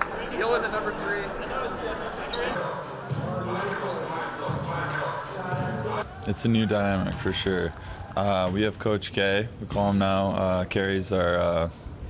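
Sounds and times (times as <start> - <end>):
echoing voices and chatter: 0.0 - 12.0.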